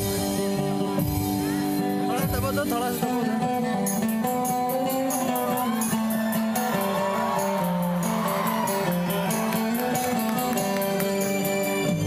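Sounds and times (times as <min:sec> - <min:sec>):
drum kit cymbal beat: 0:00.0 - 0:03.0
guitar held notes: 0:00.0 - 0:12.0.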